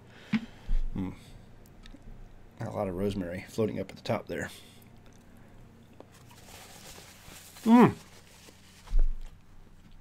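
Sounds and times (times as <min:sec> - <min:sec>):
person quietly chewing: 0:01.6 - 0:02.2, 0:04.8 - 0:06.3.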